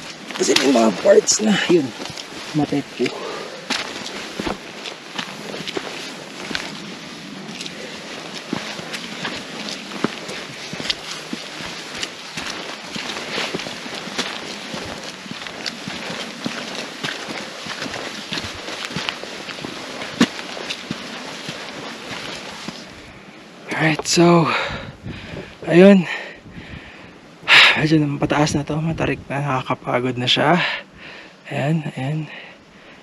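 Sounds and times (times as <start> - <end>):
footsteps on gravel trail: 0.0 - 26.3.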